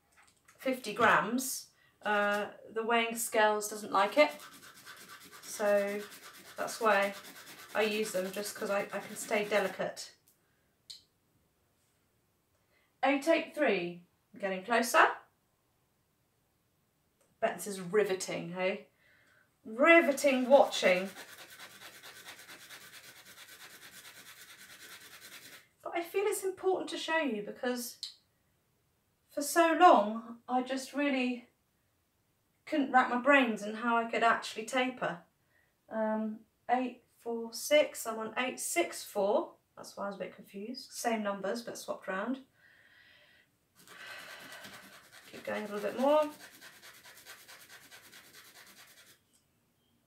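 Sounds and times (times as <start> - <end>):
tablet rasping on sandpaper: 4.0 - 9.8, 20.0 - 25.7, 43.8 - 49.2.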